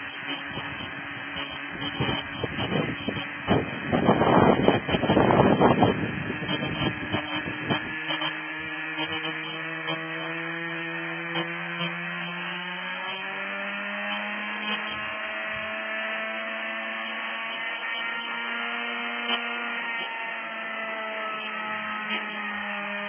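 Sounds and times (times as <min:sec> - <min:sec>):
model helicopter rotor humming: 0:00.0 - 0:23.0
wind gusts on microphone: 0:00.2 - 0:09.2.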